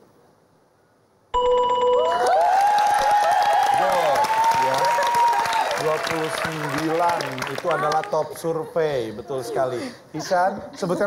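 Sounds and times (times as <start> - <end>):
bright electronic ding: 1.4 - 2.2
audience cheering and applauding: 2.0 - 8.2.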